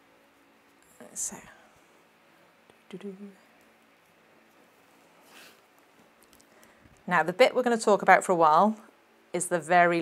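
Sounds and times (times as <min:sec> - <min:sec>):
soft whisper with sharp hiss: 0:00.8 - 0:03.6.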